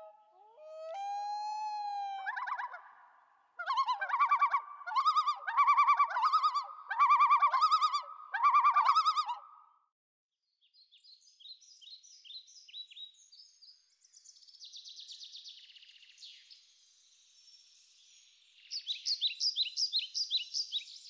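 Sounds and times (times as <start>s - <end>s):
loon wailing and yodeling: 0.0s - 2.9s, 3.6s - 9.4s.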